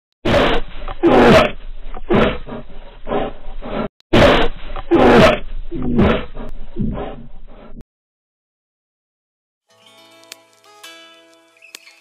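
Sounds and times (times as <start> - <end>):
loud animal roars: 0.3 - 7.4.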